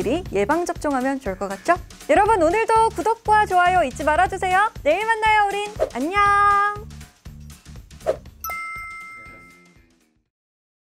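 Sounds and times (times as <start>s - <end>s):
backing music: 0.0s - 10.2s
short whoosh: 8.0s - 8.3s
bright chime ringing: 8.4s - 9.8s.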